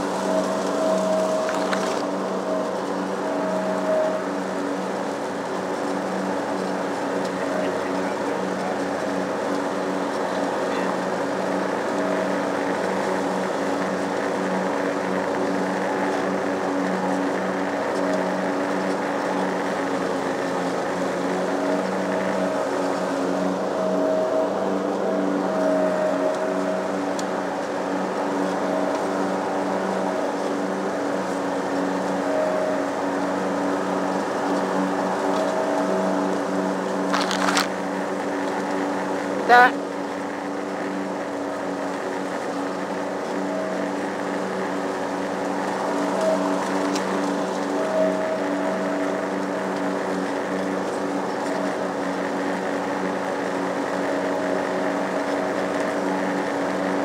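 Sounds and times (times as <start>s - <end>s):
lawn mower engine running: 0.0s - 57.0s.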